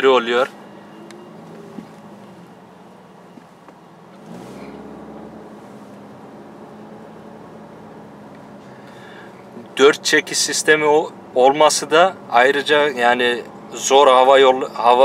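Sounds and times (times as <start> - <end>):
road noise: 0.0 - 15.0
car engine accelerating: 3.4 - 15.0.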